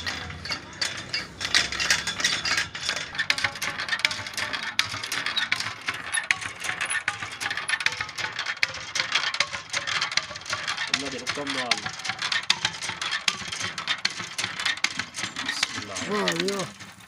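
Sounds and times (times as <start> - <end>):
hand pump clanking: 0.0 - 17.0.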